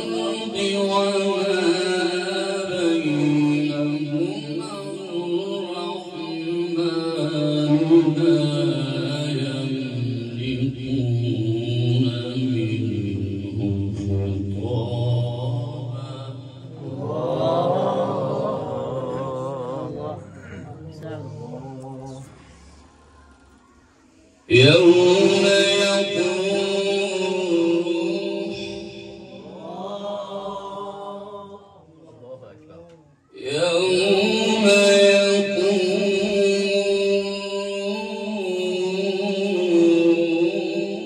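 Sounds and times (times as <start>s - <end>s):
man reciting melodically: 0.0s - 22.8s, 24.5s - 41.0s.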